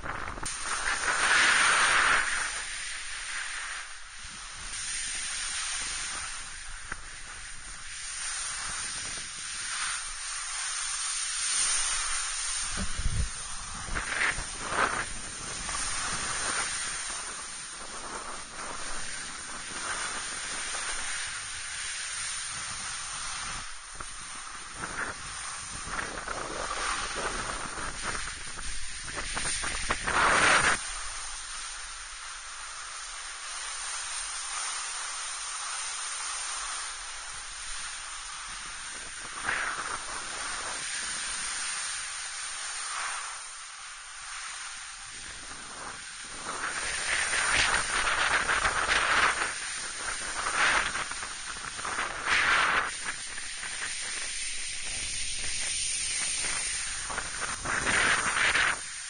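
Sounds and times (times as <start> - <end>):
snowboard edges scraping: 0.0 - 59.0
snowboard sliding on snow: 0.0 - 59.0.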